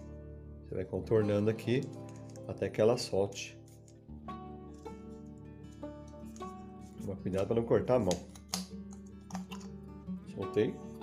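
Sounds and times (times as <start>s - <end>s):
acoustic guitar music: 0.0s - 11.0s
knife prying plastic clicks: 8.0s - 9.7s.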